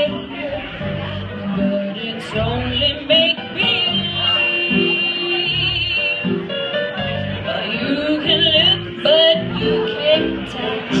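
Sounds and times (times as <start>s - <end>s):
woman singing with vibrato: 0.0s - 6.4s, 7.4s - 11.0s
jazz band playing: 0.0s - 11.0s.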